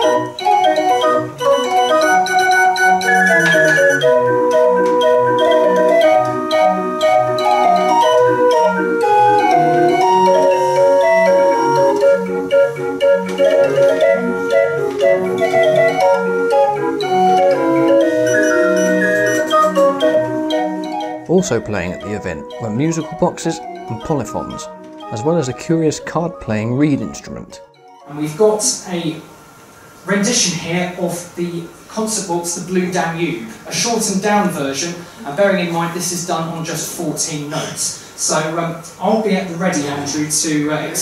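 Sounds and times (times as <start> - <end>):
street organ playing lively tune: 0.0 - 28.2.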